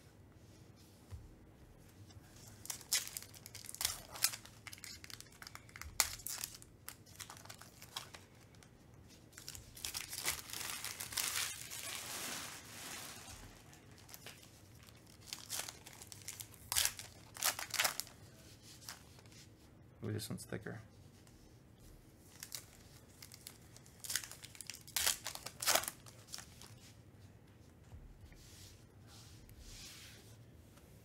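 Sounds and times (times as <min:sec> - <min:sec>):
foil wrapper crinkling and tearing: 0:02.6 - 0:08.7, 0:09.4 - 0:18.2, 0:22.3 - 0:26.8.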